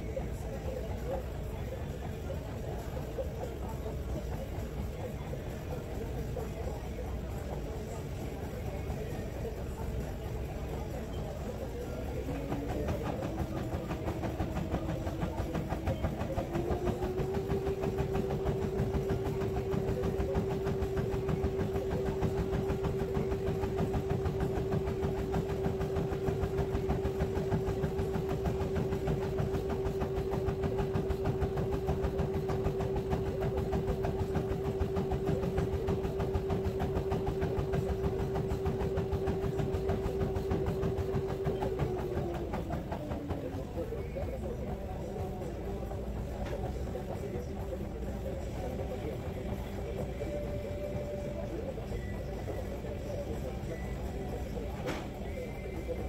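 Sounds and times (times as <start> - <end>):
treadmill motor whine: 0.0 - 56.0.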